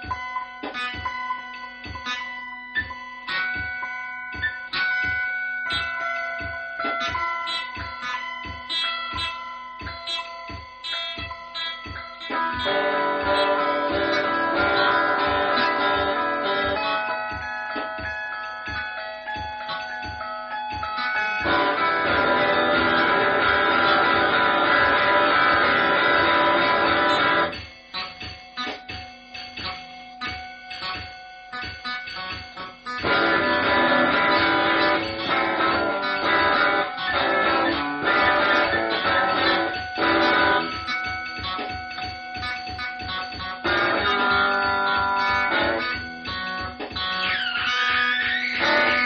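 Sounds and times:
ringing guitar notes: 0:00.0 - 0:49.0.

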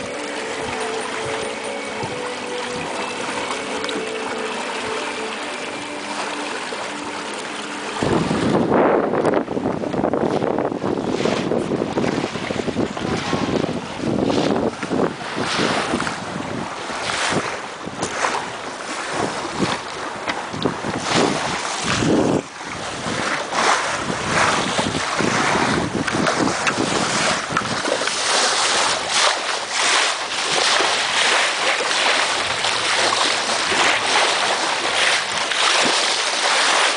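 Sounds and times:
wind buffeting microphone: 0:00.0 - 0:05.8, 0:07.9 - 0:36.9
water rushing along hull: 0:00.0 - 0:36.9.

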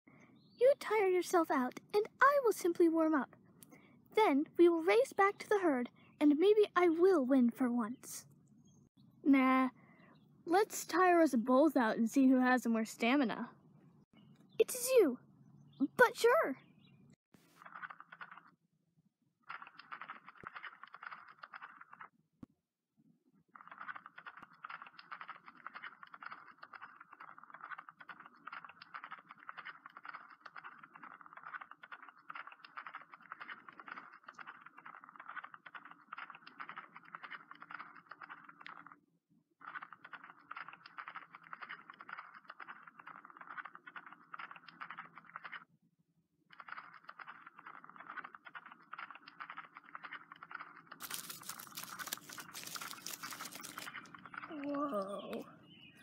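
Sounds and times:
horse hooves galloping: 0:51.0 - 0:55.4.

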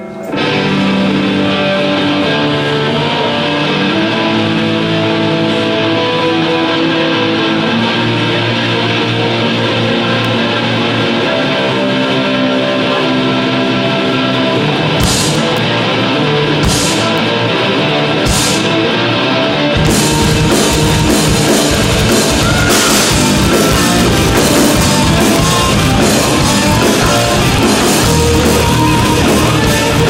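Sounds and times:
bass guitar: 0:00.0 - 0:30.0
electric guitars: 0:00.0 - 0:30.0
drum kit: 0:14.7 - 0:30.0.

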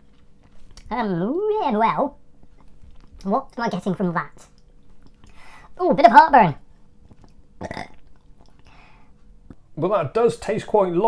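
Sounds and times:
man breathing: 0:05.3 - 0:05.7, 0:08.6 - 0:09.2
man burping: 0:07.6 - 0:08.0.

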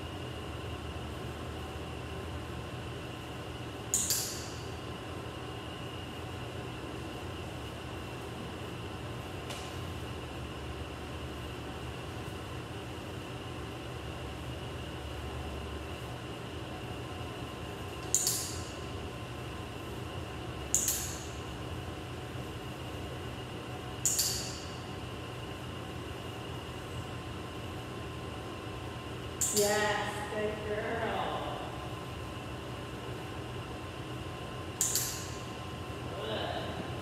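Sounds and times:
mechanical hum: 0:00.0 - 0:37.0.

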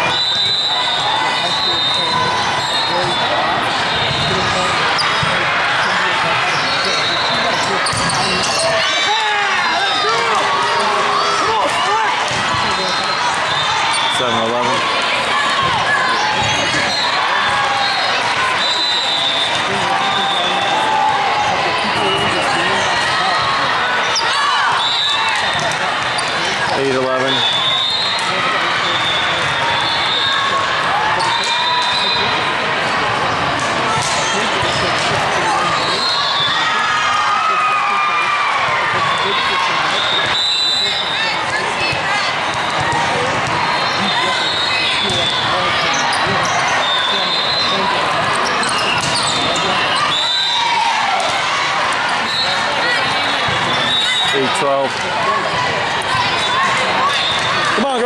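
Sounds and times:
many overlapping voices: 0:00.0 - 0:58.0
volleyballs hit and bouncing: 0:10.2 - 0:17.6, 0:22.3 - 0:27.4, 0:32.8 - 0:35.8, 0:41.4 - 0:44.2, 0:48.0 - 0:50.0.

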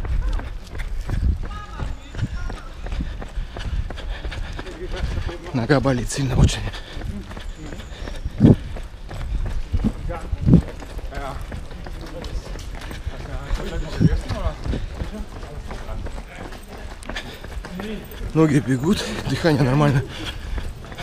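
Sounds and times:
wind on microphone: 0:00.0 - 0:04.1, 0:08.1 - 0:10.8, 0:13.8 - 0:14.9
footfalls on pavement: 0:00.0 - 0:21.0.

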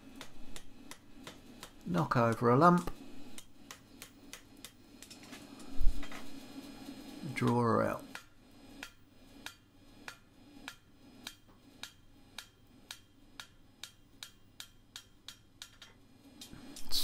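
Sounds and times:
hammer tapping horseshoe on anvil: 0:07.5 - 0:16.0.

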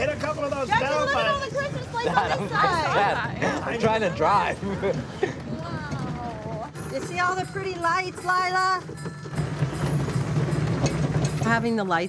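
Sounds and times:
ride-on train droning: 0:05.5 - 0:12.0.

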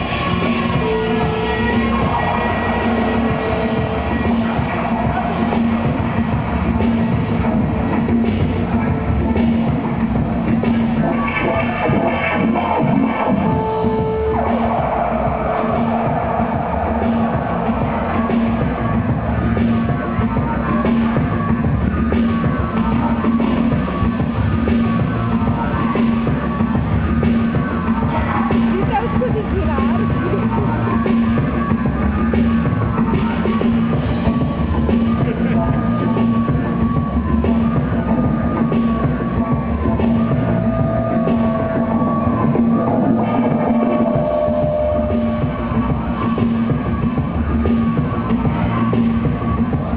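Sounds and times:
electronic beats: 0:00.0 - 0:49.9
held low bass note: 0:34.1 - 0:49.9.

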